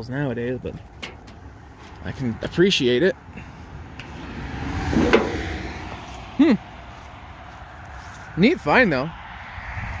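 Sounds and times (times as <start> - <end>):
car passing: 3.2 - 10.0.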